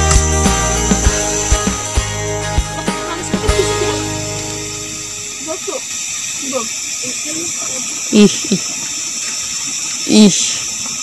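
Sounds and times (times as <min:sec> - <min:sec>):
background music: 0:00.0 - 0:05.5
gas stove hissing: 0:00.0 - 0:11.0
water boiling: 0:00.8 - 0:11.0.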